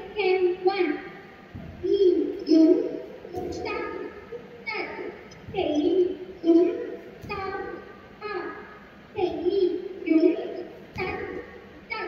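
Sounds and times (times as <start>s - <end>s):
person chanting rhythmic syllables: 0.0s - 12.0s.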